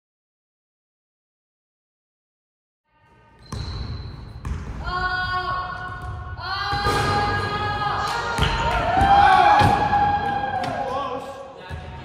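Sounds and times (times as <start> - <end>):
basketball bouncing on gym floor: 3.4 - 7.1, 8.3 - 9.9.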